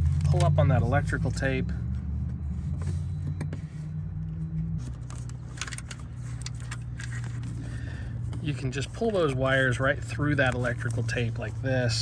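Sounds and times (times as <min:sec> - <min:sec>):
low engine hum: 0:00.0 - 0:12.0
tape clicks and crackles: 0:04.8 - 0:07.6.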